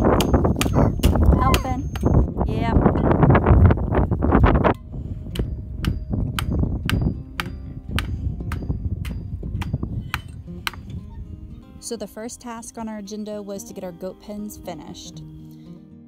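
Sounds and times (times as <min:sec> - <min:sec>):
acoustic guitar music: 0:00.0 - 0:16.0.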